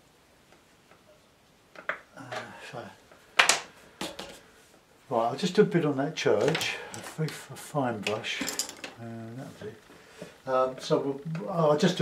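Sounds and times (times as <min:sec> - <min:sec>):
painting tools clattering: 0:06.3 - 0:07.4, 0:08.0 - 0:09.0.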